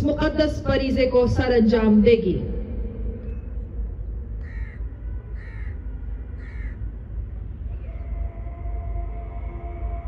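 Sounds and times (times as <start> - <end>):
steady low rumble: 0.0 - 10.0
crow cawing: 4.4 - 4.8, 5.4 - 5.8, 6.4 - 6.8.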